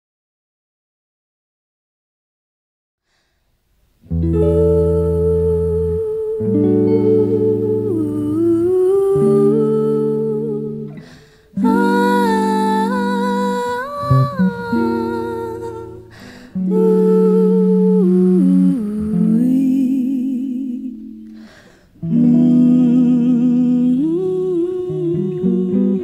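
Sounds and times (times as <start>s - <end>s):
jazz guitar chords: 4.0s - 26.0s
woman humming a melody: 4.2s - 21.4s, 22.0s - 26.0s.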